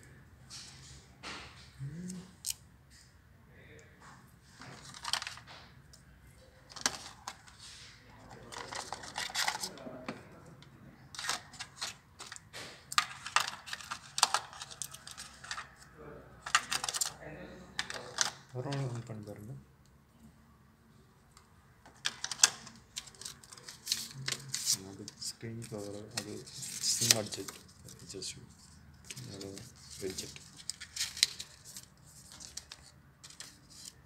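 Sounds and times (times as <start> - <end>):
paper packaging rustling: 4.5 - 5.6, 6.6 - 9.8, 11.1 - 17.2, 17.8 - 19.2, 21.9 - 34.0.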